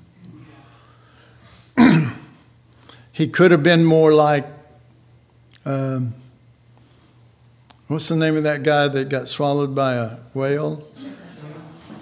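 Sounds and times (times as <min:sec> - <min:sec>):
man clearing his throat: 0:01.8 - 0:02.5.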